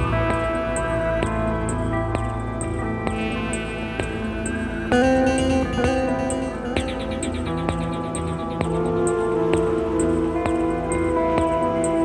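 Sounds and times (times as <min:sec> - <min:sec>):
electric guitar notes: 0:00.0 - 0:12.0
sustained ensemble backdrop: 0:00.0 - 0:12.0.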